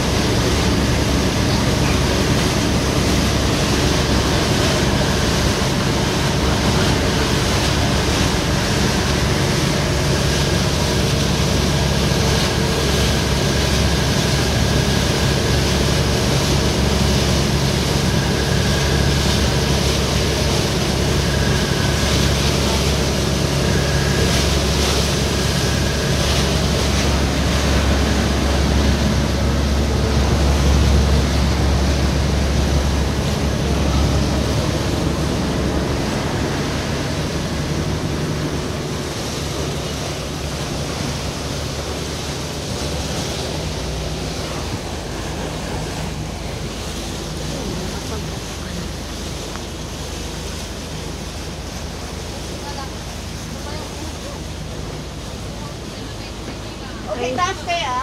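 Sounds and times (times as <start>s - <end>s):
boat engine drone: 0.0s - 58.0s
water rushing: 0.0s - 58.0s.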